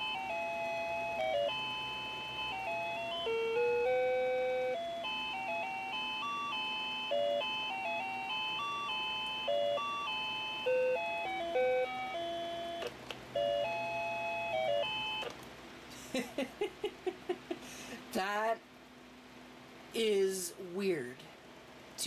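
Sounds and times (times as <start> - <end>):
electronic beeping alarm tune: 0.0 - 15.3.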